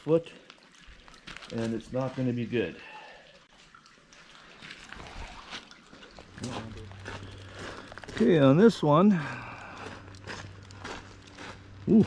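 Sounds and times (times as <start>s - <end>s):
man speaking: 1.5s - 2.9s
footsteps on grass: 6.0s - 12.0s
steady low hum: 6.0s - 12.0s.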